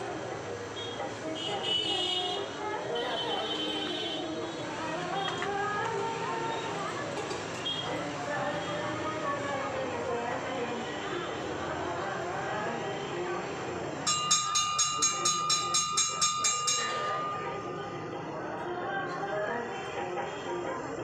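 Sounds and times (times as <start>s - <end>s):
murmur of voices: 0.0s - 21.0s
temple bell ringing quickly: 14.1s - 18.0s.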